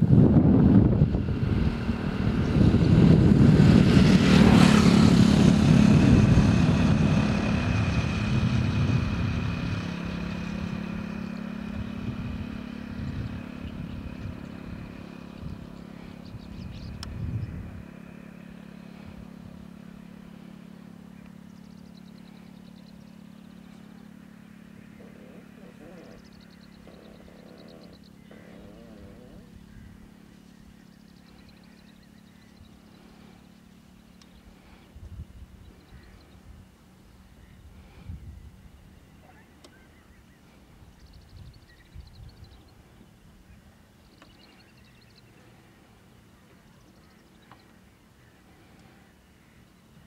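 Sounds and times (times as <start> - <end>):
low engine hum: 0.0 - 50.0
motor vehicle passing: 0.0 - 50.0.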